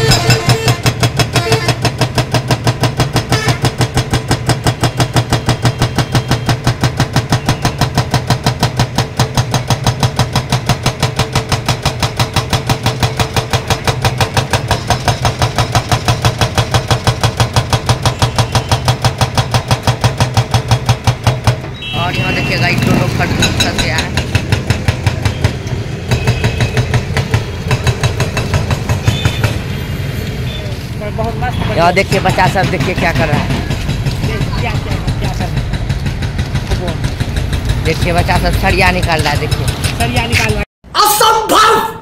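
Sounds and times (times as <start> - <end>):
hydraulic breaker pounding concrete: 0.0 - 21.7, 22.9 - 29.6, 32.1 - 40.6
excavator engine running: 0.0 - 29.9, 31.8 - 40.7.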